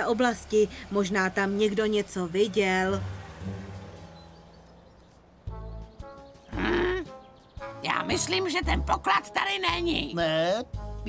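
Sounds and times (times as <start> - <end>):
cartoon fire engine hum: 0.0 - 7.2.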